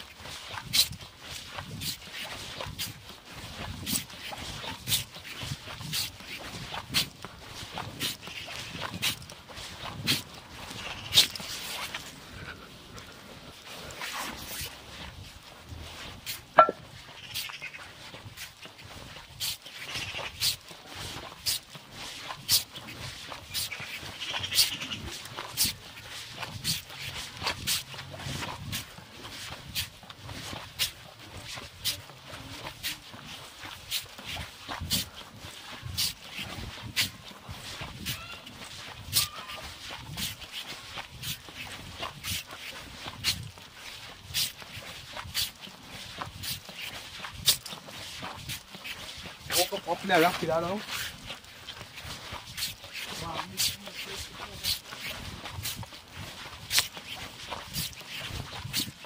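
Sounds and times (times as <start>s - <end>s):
dog barking: 16.6s - 16.8s.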